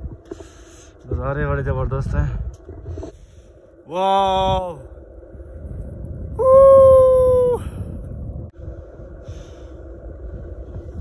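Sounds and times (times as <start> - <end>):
wind noise on microphone: 0.0 - 11.0
man whooping: 3.9 - 4.9, 6.3 - 7.9.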